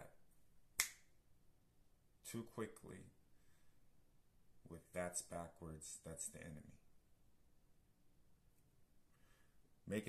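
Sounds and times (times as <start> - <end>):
finger snap: 0.7 - 1.2.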